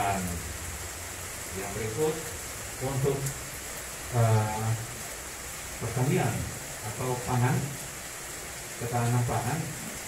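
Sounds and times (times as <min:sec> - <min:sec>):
man speaking into a microphone: 0:00.0 - 0:00.5, 0:01.5 - 0:03.4, 0:04.1 - 0:04.9, 0:05.8 - 0:07.8, 0:08.8 - 0:09.9.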